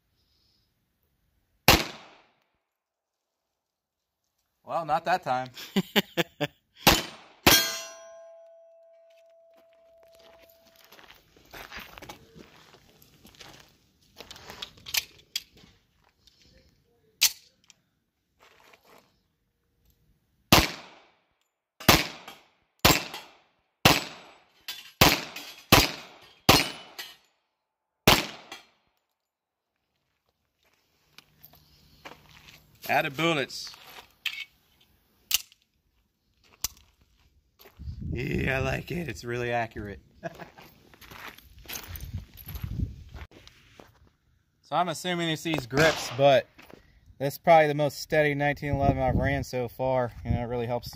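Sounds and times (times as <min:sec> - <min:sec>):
pistol shots: 0:01.7 - 0:02.3, 0:06.8 - 0:07.9, 0:20.5 - 0:21.1, 0:21.8 - 0:24.4, 0:25.0 - 0:27.0, 0:28.1 - 0:28.6, 0:45.8 - 0:46.3
steel plate ringing: 0:07.5 - 0:09.5.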